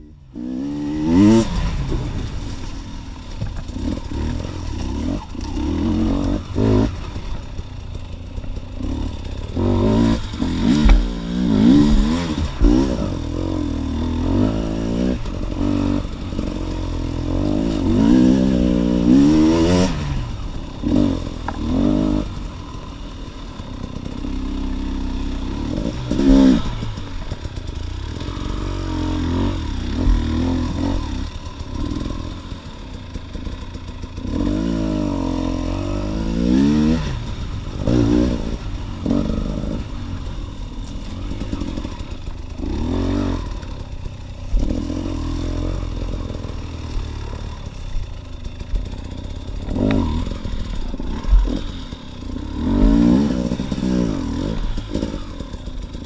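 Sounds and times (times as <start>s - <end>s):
dirt bike engine revving: 0.0s - 56.0s
bike knocking over rough ground: 10.6s - 12.9s.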